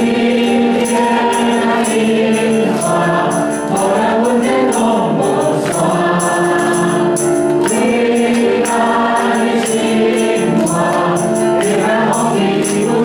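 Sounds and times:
group singing into microphones: 0.0s - 13.0s
instrumental accompaniment: 0.0s - 13.0s
jingling percussion: 0.0s - 13.0s.

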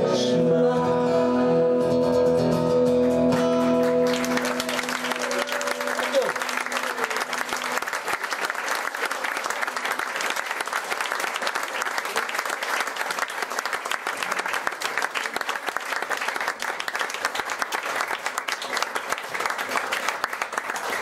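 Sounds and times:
audience applauding: 3.3s - 21.0s.

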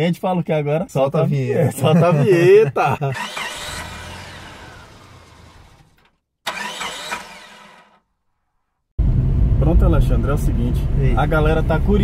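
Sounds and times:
car engine revving: 3.2s - 7.9s.

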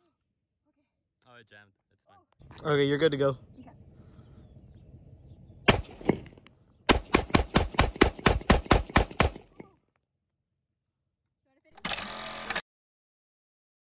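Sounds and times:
rifle shots: 5.6s - 9.6s.

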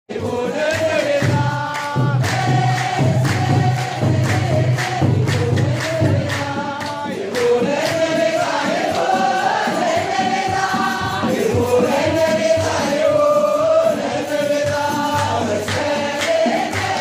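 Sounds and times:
crowd singing a hymn: 0.1s - 17.0s
hand drum beating: 0.2s - 17.0s.

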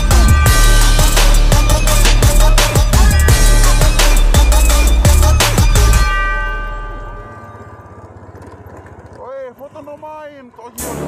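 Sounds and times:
background music held chord: 0.0s - 8.1s.

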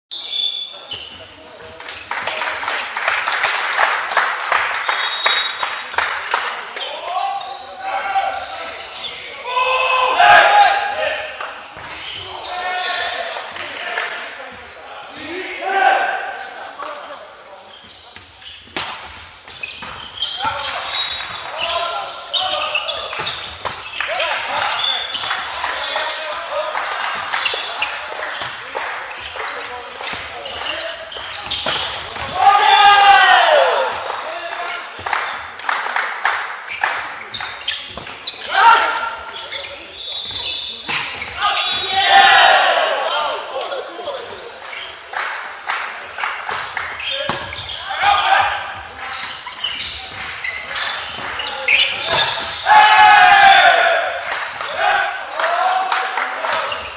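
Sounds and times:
players shouting: 6.8s - 11.4s, 15.0s - 16.6s, 32.1s - 34.8s, 38.4s - 39.5s, 41.3s - 44.3s, 47.0s - 49.2s, 50.5s - 56.9s
volleyball strikes: 46.5s - 48.5s, 49.7s - 52.7s.

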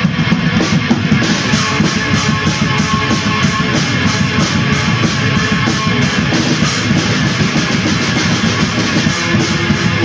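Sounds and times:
distorted electric guitar: 0.0s - 10.0s
drums: 0.0s - 10.0s.

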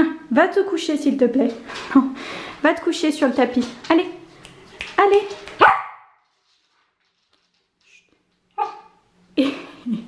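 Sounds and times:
small dog barking: 5.6s - 6.1s, 8.6s - 9.0s
woman laughing: 9.4s - 10.0s.

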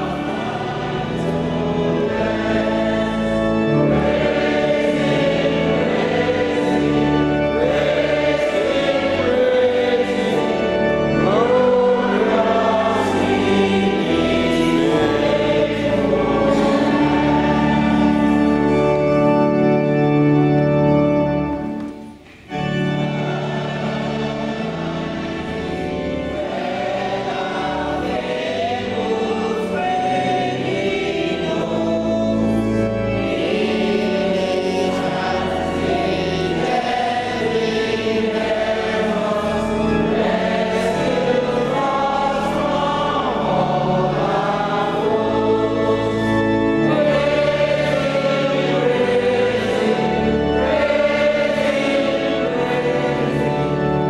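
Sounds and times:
congregation singing a hymn: 0.0s - 54.0s
organ sustained low notes: 0.0s - 54.0s.

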